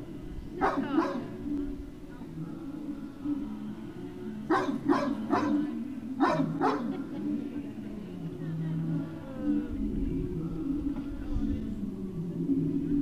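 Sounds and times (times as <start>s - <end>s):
dog barking: 0.6s - 1.3s, 4.5s - 7.0s.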